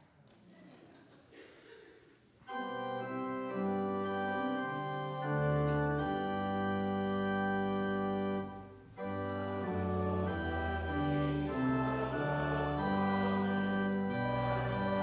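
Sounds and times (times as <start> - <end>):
pipe organ chords: 2.5 - 15.0.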